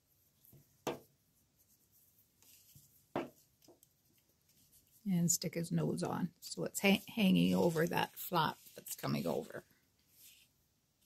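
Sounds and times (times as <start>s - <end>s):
paper rustling: 6.8s - 10.6s.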